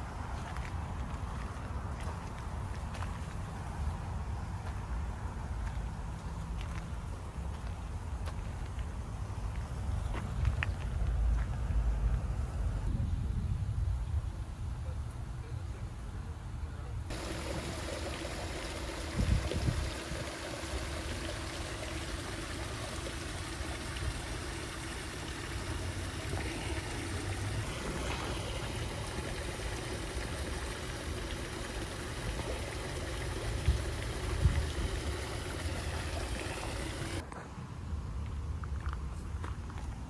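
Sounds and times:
faint steady hum: 15.8 - 37.2
water trickling over rocks: 17.1 - 37.2.

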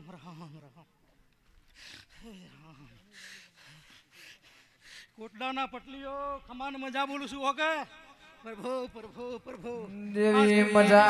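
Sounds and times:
man breathing sharply: 1.7 - 5.2.

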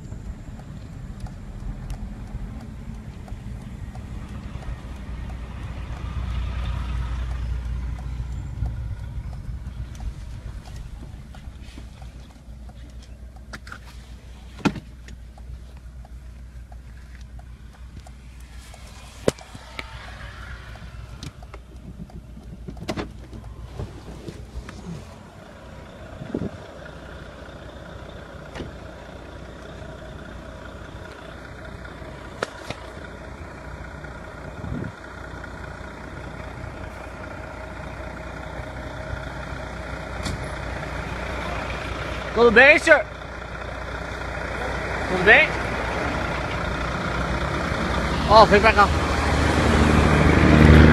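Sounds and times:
hum: 0.0 - 42.3
vehicle engine idling: 0.0 - 50.9.

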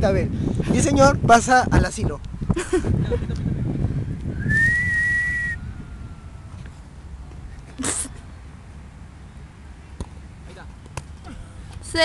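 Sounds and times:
whistle blast: 4.4 - 6.3.

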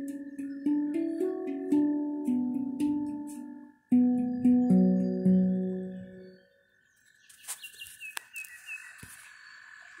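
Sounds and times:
handpan notes ringing: 0.0 - 6.6.

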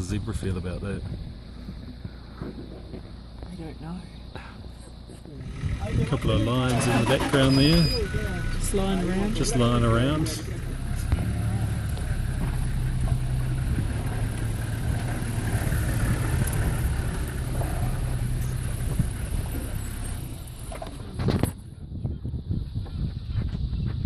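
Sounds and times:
vehicle engine running: 0.0 - 24.0
vehicle passing: 5.4 - 21.2.

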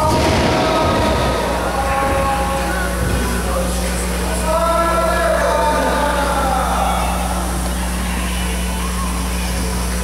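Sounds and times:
low electrical hum: 0.0 - 10.0
room noise: 0.0 - 10.0.

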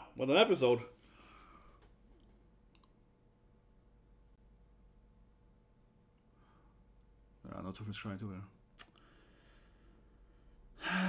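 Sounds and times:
man's sharp breath and sigh: 10.8 - 11.0.

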